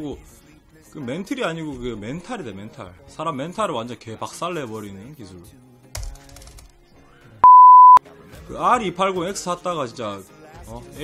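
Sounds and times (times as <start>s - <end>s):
faint background music: 0.0s - 11.0s
censor bleep: 7.4s - 8.0s.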